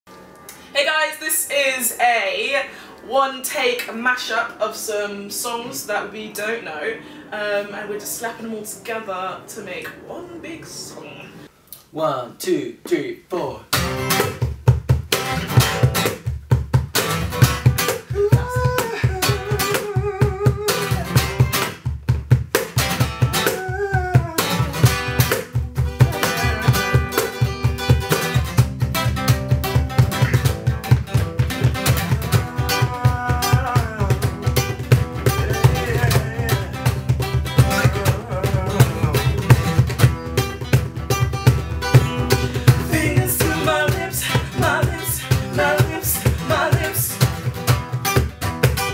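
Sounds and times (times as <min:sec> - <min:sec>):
acoustic guitar strumming: 0:13.7 - 0:48.9
cajon beat: 0:13.7 - 0:48.9
person singing: 0:18.1 - 0:21.4, 0:23.3 - 0:25.0, 0:26.0 - 0:27.4, 0:31.6 - 0:39.9, 0:42.0 - 0:47.4.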